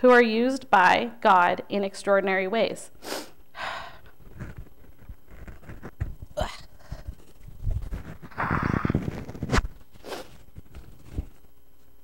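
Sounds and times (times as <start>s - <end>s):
sharp intake of breath: 3.0s - 4.0s.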